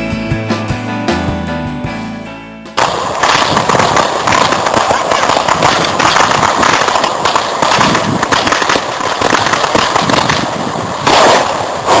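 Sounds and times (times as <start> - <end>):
firecrackers crackling: 2.8 - 12.0.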